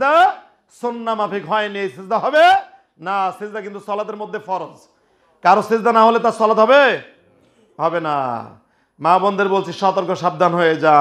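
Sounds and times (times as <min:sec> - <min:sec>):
man preaching in raised voice: 0:00.0 - 0:07.2, 0:07.8 - 0:11.0.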